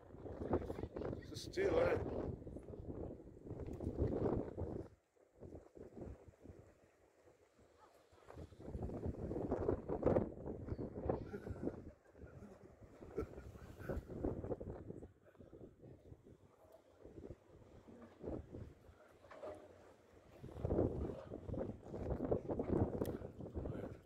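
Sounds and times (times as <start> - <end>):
wind buffeting microphone: 0.0 - 6.7, 8.3 - 18.9, 20.4 - 24.0.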